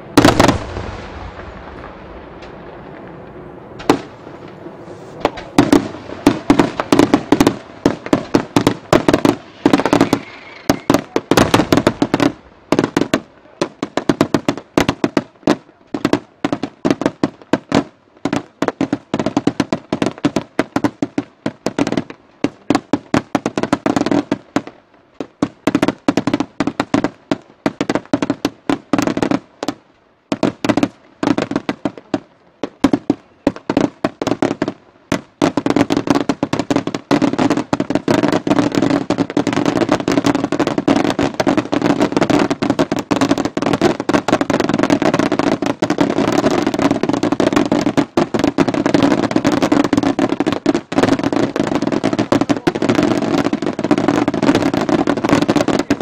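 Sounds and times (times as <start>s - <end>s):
fireworks banging: 0.0s - 56.0s.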